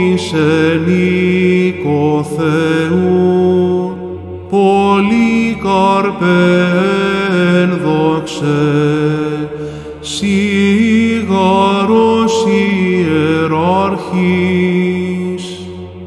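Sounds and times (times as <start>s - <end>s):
low vocal drone: 0.0s - 16.0s
man chanting: 0.0s - 16.0s
short breaths: 9.5s - 10.0s.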